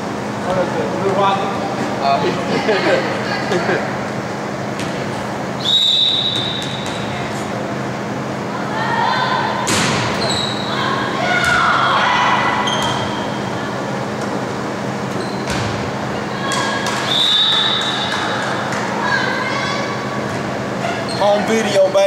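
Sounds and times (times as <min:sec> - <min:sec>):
people shouting and calling: 0:08.5 - 0:13.9, 0:16.2 - 0:20.2.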